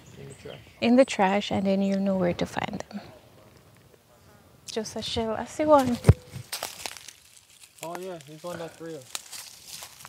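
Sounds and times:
dry leaves crackling and crunching: 5.8s - 10.0s.

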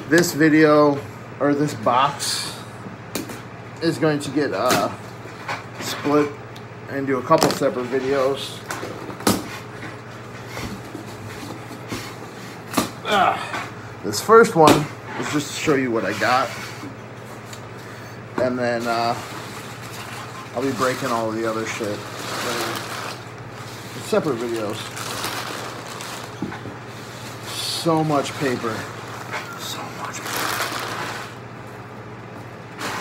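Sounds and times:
steady low hum: 0.0s - 33.0s
packing paper crumpling and rustling: 18.7s - 31.4s.

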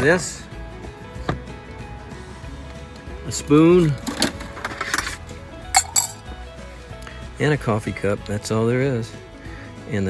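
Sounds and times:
metal spoon clinking cup: 5.8s - 6.2s.

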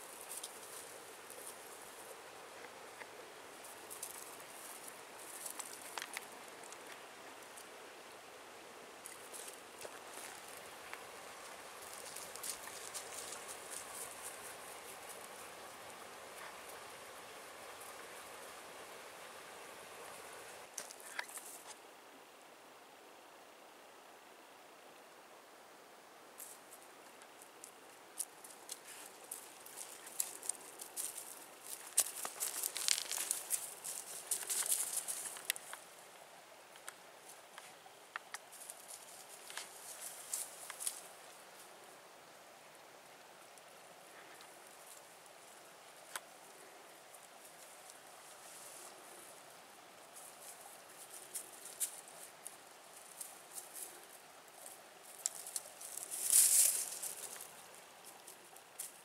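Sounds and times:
rustling of dry leaves: 0.0s - 21.8s, 26.2s - 59.0s
twig snaps and crackles: 31.8s - 33.7s.

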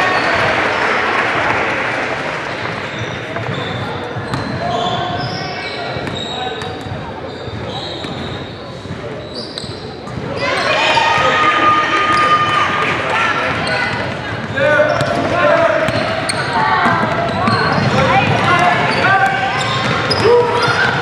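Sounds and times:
sneaker squeaks: 2.5s - 10.8s, 12.1s - 12.6s, 13.2s - 21.0s
people shouting: 10.4s - 13.5s, 16.6s - 21.0s.

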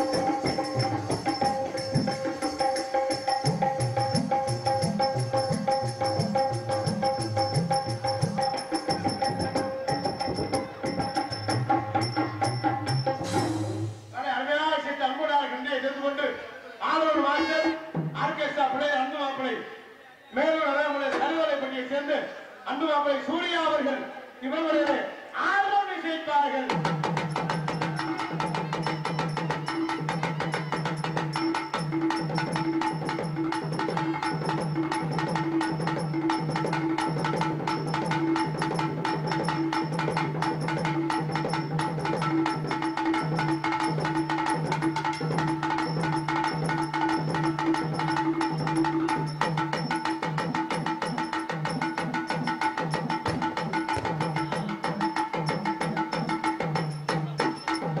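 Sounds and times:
fast hand drum strokes: 0.0s - 14.2s, 26.7s - 58.0s.

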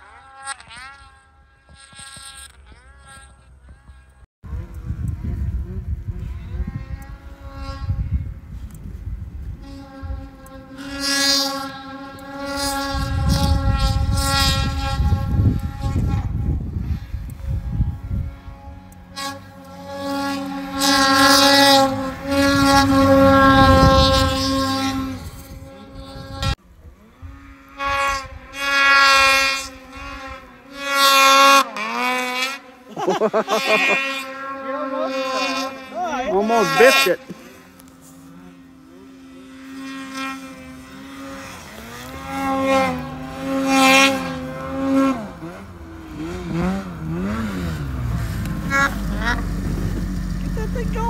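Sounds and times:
snowmobile engine revving: 0.0s - 51.0s.

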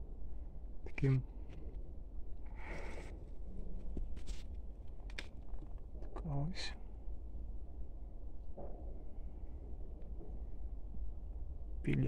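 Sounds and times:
soft rustle: 2.6s - 6.2s.

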